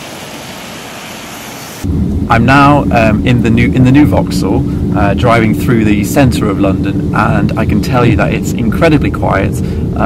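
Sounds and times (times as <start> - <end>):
hiss of wet street: 0.0 - 1.9.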